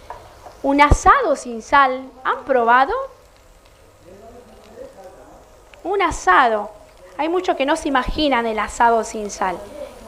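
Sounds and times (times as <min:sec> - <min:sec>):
distant voices murmuring: 0:02.0 - 0:10.0.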